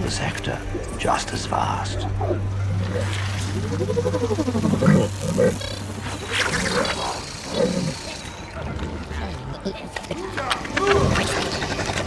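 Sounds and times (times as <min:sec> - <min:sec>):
creature growling: 0:02.0 - 0:09.8.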